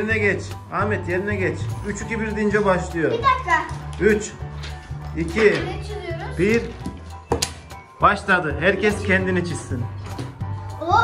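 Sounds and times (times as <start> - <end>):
children talking: 2.7 - 4.3, 5.2 - 6.7, 10.7 - 11.0.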